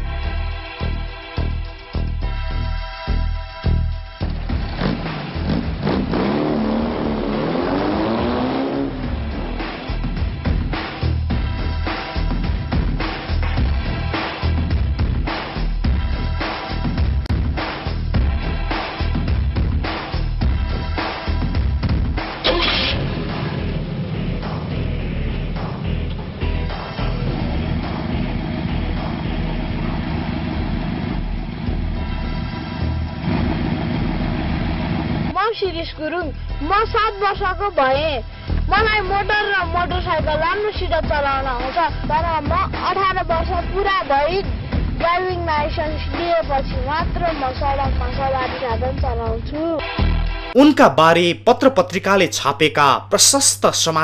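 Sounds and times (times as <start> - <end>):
music: 0.0 - 54.0
engine revving: 4.3 - 11.0, 22.3 - 35.4
child's voice: 35.4 - 49.9.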